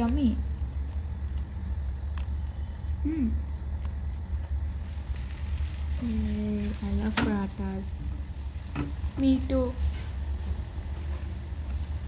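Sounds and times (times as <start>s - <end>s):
faint sizzling in a pan: 0.0s - 12.0s
steady low rumble: 0.0s - 12.0s.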